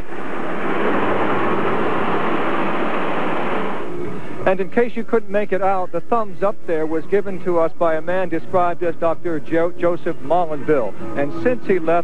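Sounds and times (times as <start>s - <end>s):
car running close by: 0.0s - 4.2s.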